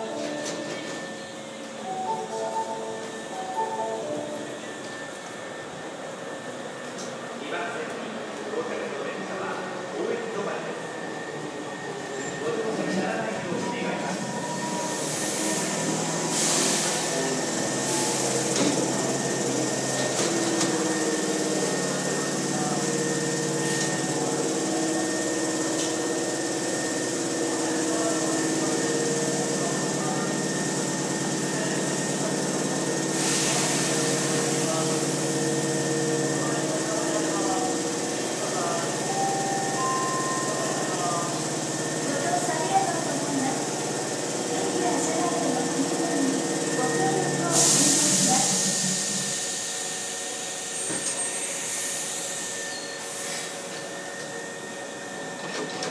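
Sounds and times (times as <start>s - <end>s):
electric train coming to a stop: 0.0s - 55.9s
steady machine hum: 0.0s - 55.9s.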